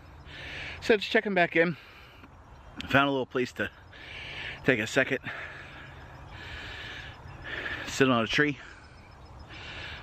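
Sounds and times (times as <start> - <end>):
man breathing: 0.1 - 0.8, 1.7 - 2.3, 3.8 - 10.0
man speaking: 7.9 - 8.7.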